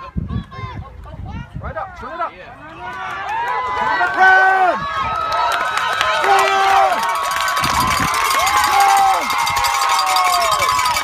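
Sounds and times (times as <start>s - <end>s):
spectators shouting: 2.6s - 11.0s
person holding long loud shout: 6.1s - 7.1s.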